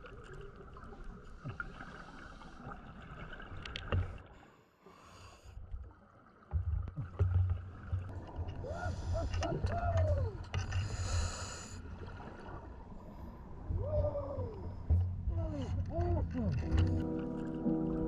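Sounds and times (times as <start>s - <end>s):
low rumble of moving water: 0.0s - 18.0s
muffled voice through regulator: 15.3s - 17.0s.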